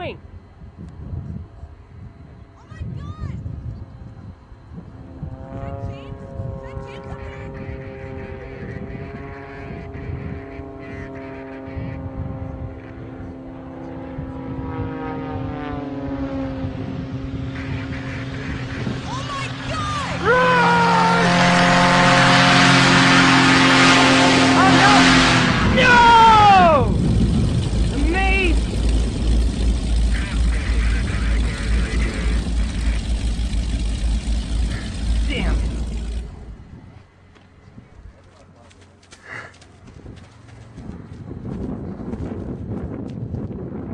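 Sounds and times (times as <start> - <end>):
model aircraft engine: 4.0 - 43.9.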